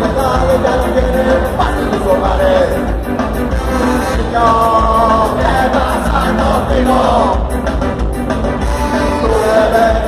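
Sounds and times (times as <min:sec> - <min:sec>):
person singing: 0:00.0 - 0:02.9, 0:04.1 - 0:07.5, 0:09.2 - 0:10.0
ska band playing live: 0:00.0 - 0:10.0.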